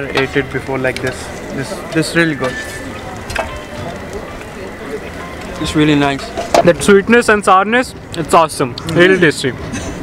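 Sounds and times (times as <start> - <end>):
faint voices: 0.0 - 10.0
street background noise: 0.0 - 10.0.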